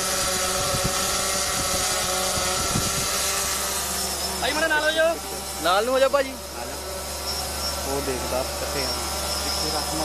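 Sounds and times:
drone propellers whining: 0.0 - 10.0
wind rumble on microphone: 0.3 - 3.3.

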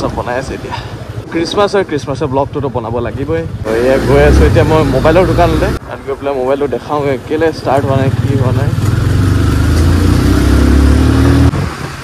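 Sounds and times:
road and wind noise: 0.0 - 12.0.

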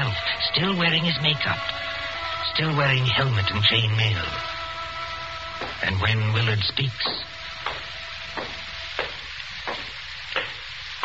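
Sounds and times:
record surface hiss and crackle: 0.0 - 11.0.

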